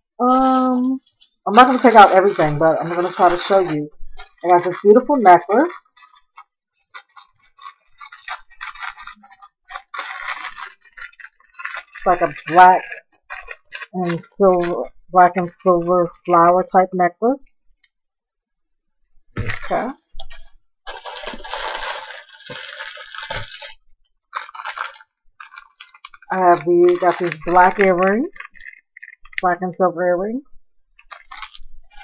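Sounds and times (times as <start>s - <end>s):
plastic bag crinkling: 0.3s - 16.8s, 19.4s - 29.6s, 31.0s - 32.0s.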